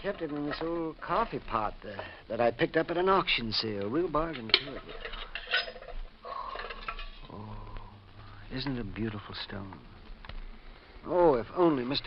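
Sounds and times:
coffee pot metal clinks: 0:04.2 - 0:07.3.

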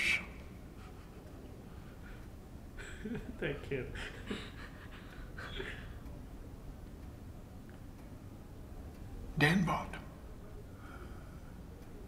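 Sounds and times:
soft breathy laughter: 0:00.7 - 0:02.2, 0:02.8 - 0:06.1.

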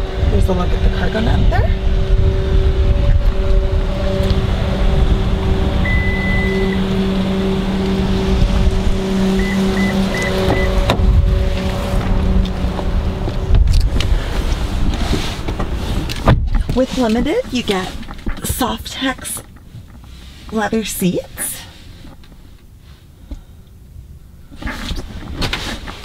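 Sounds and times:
low rumbling handling noise: 0:00.0 - 0:26.0
liftgate motor humming: 0:03.2 - 0:14.4
short beeps: 0:05.8 - 0:06.8, 0:09.4 - 0:10.8
long electronic beep: 0:05.8 - 0:06.9, 0:09.3 - 0:10.8.

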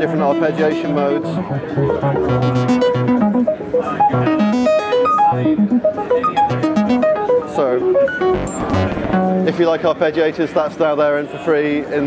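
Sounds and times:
synthesizer arpeggio: 0:00.0 - 0:09.8.

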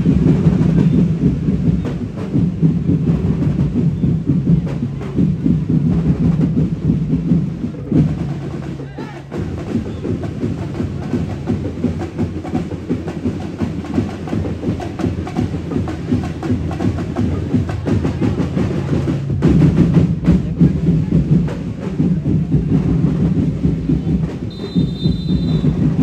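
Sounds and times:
fast dense drumming: 0:00.0 - 0:26.0.

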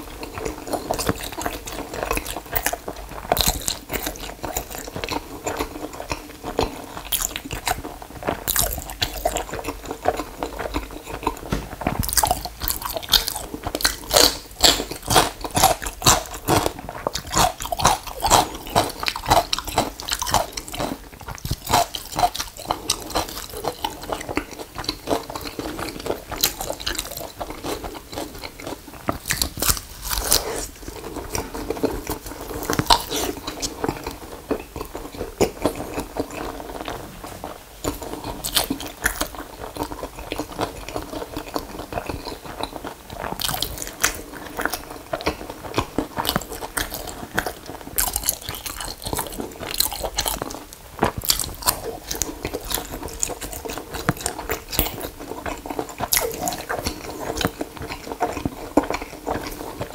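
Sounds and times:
wet chewing and lip smacks: 0:00.0 - 0:59.9.

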